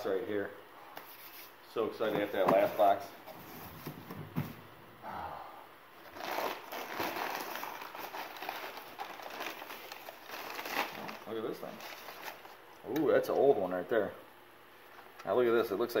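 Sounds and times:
packing paper rustling: 6.0s - 12.6s.

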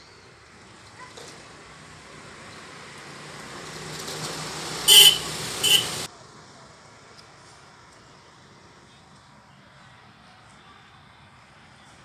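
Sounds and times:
motor vehicle approaching: 0.4s - 6.1s
short horn honks: 4.9s - 6.1s.

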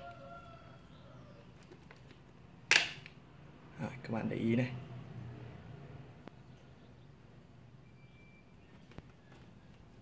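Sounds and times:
plastic part snapping into place: 2.7s - 3.2s.

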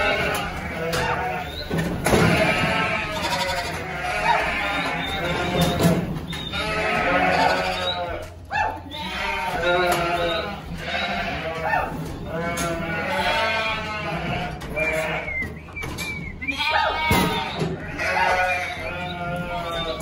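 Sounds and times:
sheep bleating: 0.0s - 15.6s, 16.4s - 20.0s.

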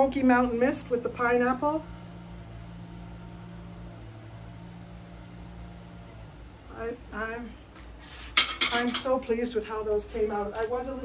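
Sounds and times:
ceramic dishes clinking: 8.4s - 9.1s.

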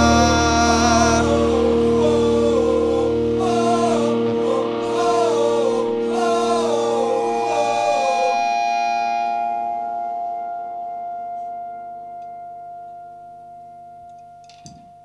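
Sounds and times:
rock band chord ringing out: 0.0s - 12.9s.

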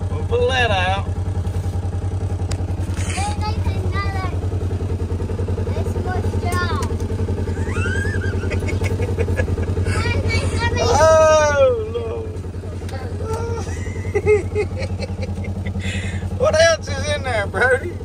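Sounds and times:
utility vehicle engine idling: 0.0s - 18.0s.

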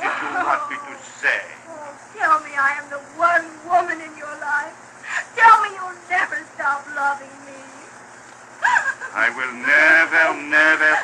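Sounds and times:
low recording hum: 0.0s - 11.0s.

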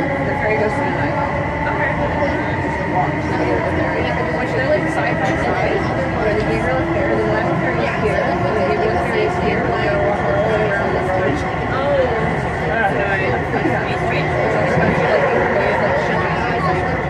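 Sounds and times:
people talking: 0.0s - 17.0s.

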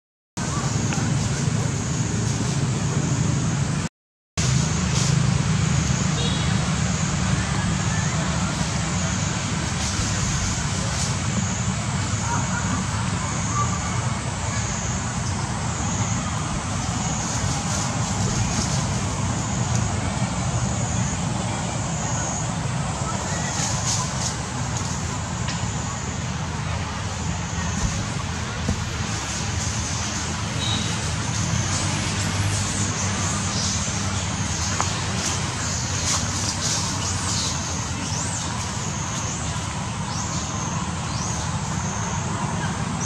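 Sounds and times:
low outdoor rumble with hiss: 0.4s - 43.0s.

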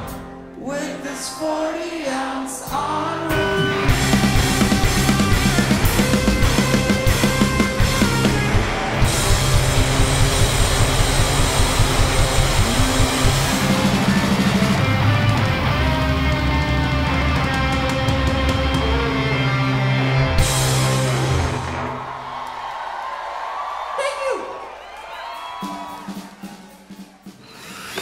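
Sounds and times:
punk rock band playing: 0.0s - 0.6s, 2.6s - 22.2s.

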